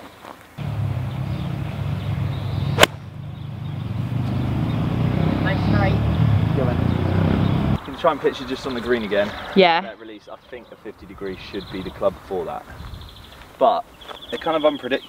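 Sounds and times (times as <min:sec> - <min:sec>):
steady low rumble: 0:00.6 - 0:04.6
golf club striking ball: 0:02.7 - 0:03.2.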